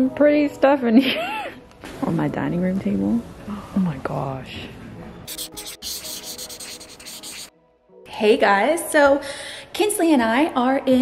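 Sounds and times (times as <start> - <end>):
rapid scraping like sanding: 5.3 - 7.5.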